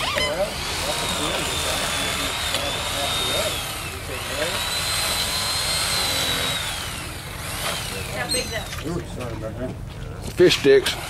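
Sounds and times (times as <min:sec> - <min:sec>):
electric fillet knife whining: 0:00.0 - 0:08.9, 0:10.7 - 0:11.0.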